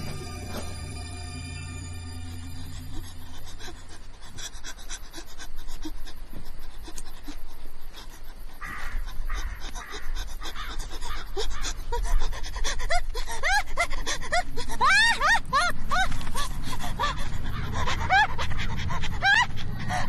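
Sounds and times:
low rumble: 0:00.0 - 0:05.7
heavy panting breaths: 0:02.5 - 0:20.0.

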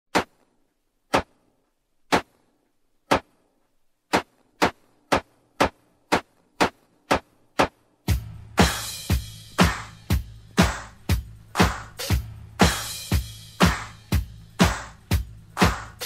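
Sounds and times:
drum machine hits: 0:04.1 - 0:16.0.

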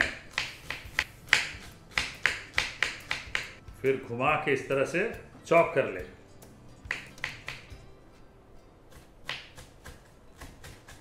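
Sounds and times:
knife slicing cabbage on board: 0:00.0 - 0:03.5, 0:08.9 - 0:11.0.

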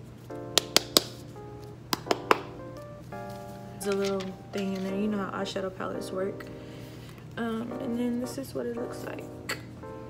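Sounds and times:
soft soul background music: 0:00.0 - 0:10.0.

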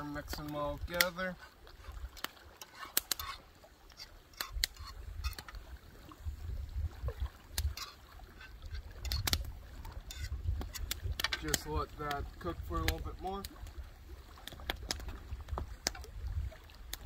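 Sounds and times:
wood fire crackling: 0:00.0 - 0:05.5, 0:07.5 - 0:16.0
wind rumble on microphone: 0:04.6 - 0:17.0.

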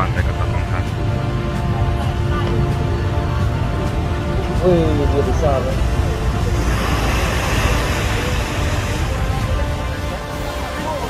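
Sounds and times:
faint music: 0:00.0 - 0:11.0
wind buffeting microphone: 0:00.0 - 0:11.0.

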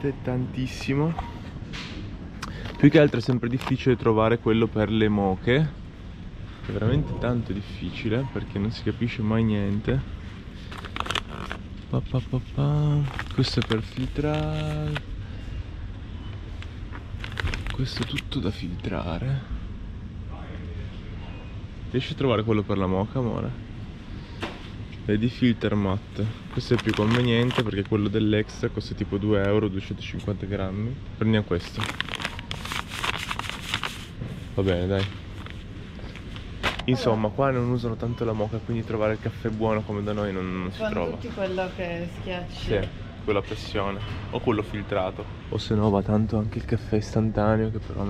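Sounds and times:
low steady background hum: 0:00.0 - 0:48.0
packaging crinkling: 0:10.5 - 0:11.8, 0:12.4 - 0:15.1, 0:16.5 - 0:18.3, 0:26.2 - 0:28.1, 0:31.6 - 0:36.8.

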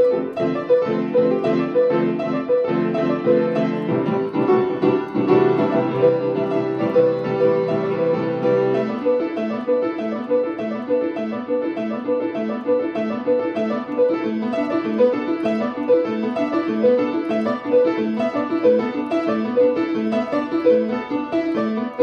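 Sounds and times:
low piano notes held: 0:00.0 - 0:22.0
repeating piano figure: 0:00.0 - 0:22.0.

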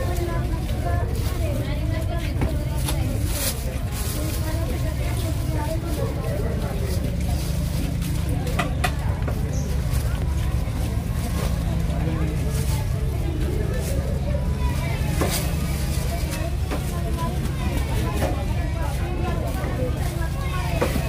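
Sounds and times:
people talking: 0:00.0 - 0:21.0
steady low rumble: 0:00.0 - 0:21.0.

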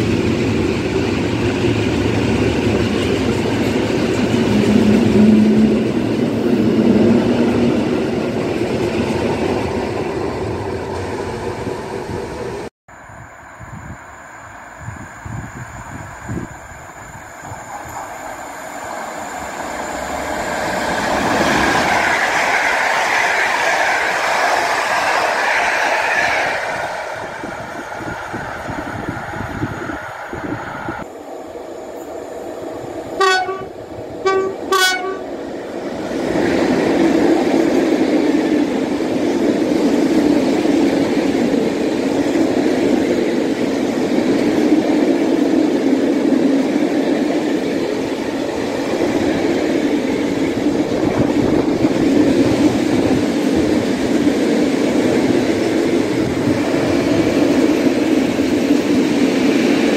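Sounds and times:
train passing at speed: 0:00.0 - 0:59.9
locomotive horn blasts: 0:33.2 - 0:35.3.

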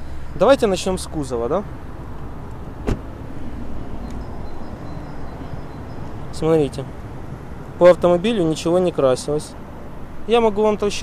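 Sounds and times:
car door shutting: 0:02.8 - 0:03.2.

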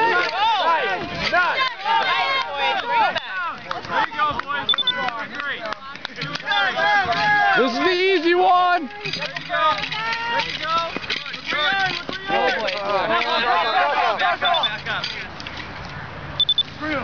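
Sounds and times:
crowd shouting encouragement: 0:00.0 - 0:15.0
short high beeps: 0:04.7 - 0:05.0, 0:14.4 - 0:14.8, 0:16.4 - 0:16.7.

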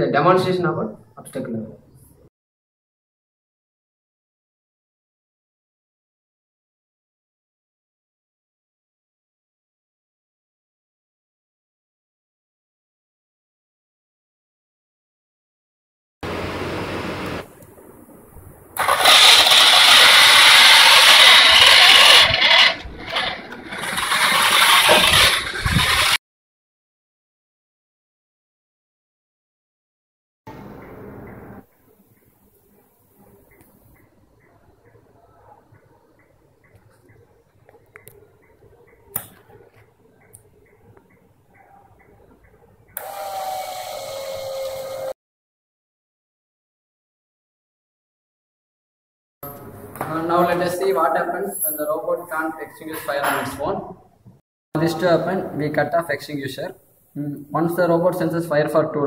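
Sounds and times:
water pump whining: 0:16.2 - 0:17.5, 0:18.8 - 0:26.2, 0:43.0 - 0:45.2
small gear motors whirring: 0:18.8 - 0:26.2, 0:43.0 - 0:45.2.

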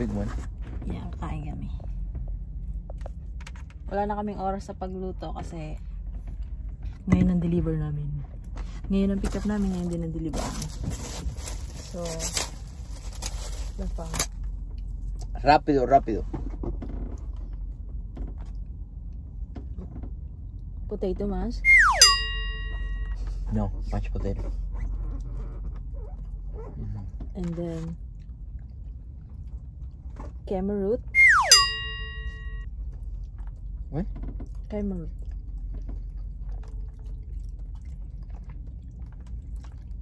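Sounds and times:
steady low hum: 0:00.0 - 0:40.0
descending slide whistle: 0:21.6 - 0:23.1, 0:31.2 - 0:32.6
bell-like ding: 0:21.7 - 0:23.2, 0:31.2 - 0:32.6.

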